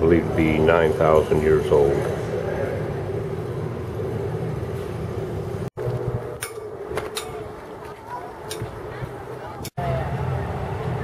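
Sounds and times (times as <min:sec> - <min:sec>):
steady hum and low rumble: 0:00.0 - 0:07.8.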